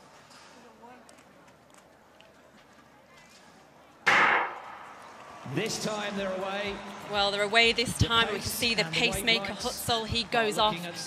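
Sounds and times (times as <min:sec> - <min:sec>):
quiet stadium background: 0:00.0 - 0:11.0.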